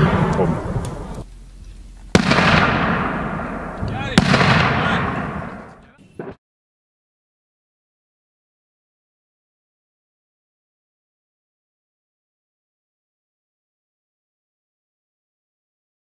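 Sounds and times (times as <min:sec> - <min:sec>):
mortar blasts echoing: 0:00.0 - 0:01.3, 0:02.1 - 0:06.4.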